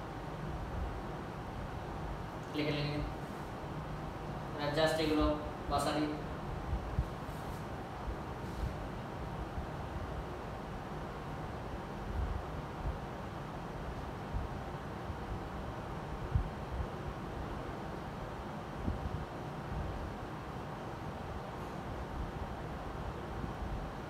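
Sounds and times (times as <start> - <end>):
low rumble with hiss: 0.0 - 24.0.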